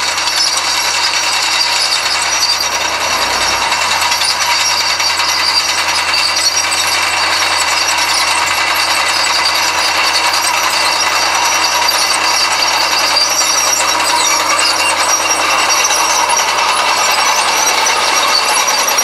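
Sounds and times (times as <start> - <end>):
clanking steel tracks: 0.0 - 19.0
crawler tractor engine running: 0.0 - 19.0.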